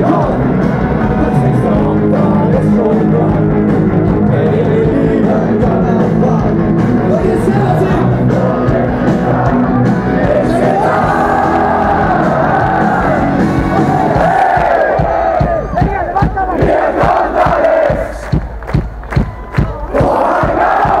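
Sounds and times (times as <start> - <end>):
crowd singing along: 0.0 - 15.6, 16.5 - 18.4, 19.9 - 21.0
punk band playing: 0.0 - 21.0
steady drum beat: 0.0 - 21.0.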